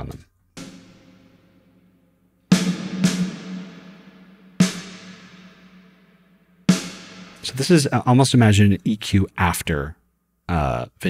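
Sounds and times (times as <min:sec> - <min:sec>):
snare drum with long reverb: 0:02.5 - 0:07.6.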